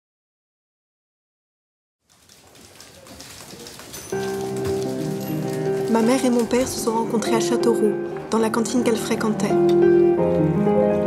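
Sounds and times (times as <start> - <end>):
dense crackle of clicks: 2.0 - 7.0
music with sustained chord: 4.2 - 11.0.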